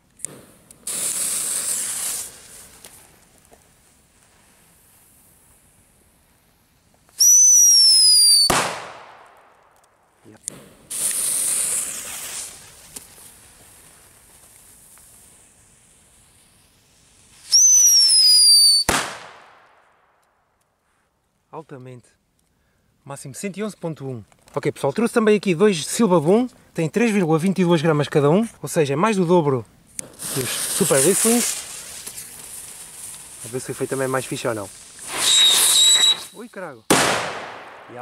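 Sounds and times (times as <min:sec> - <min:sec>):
fuse hissing: 0:00.8 - 0:03.0
firecracker whistle falling in pitch: 0:07.2 - 0:08.7, 0:17.5 - 0:19.0, 0:35.0 - 0:36.4
firecracker bang: 0:08.4 - 0:09.7, 0:18.8 - 0:19.9, 0:35.0 - 0:36.3, 0:36.9 - 0:38.0.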